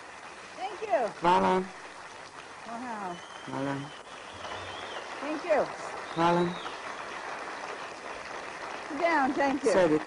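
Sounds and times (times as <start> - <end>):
large audience applauding: 0.0 - 10.0.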